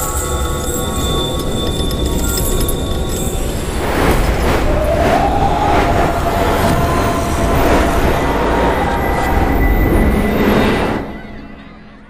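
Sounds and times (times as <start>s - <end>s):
loud rushing rumble: 3.5s - 11.2s.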